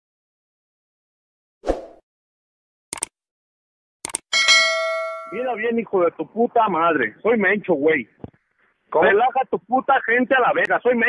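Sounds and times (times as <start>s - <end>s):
notification bell ding: 4.3s - 5.5s.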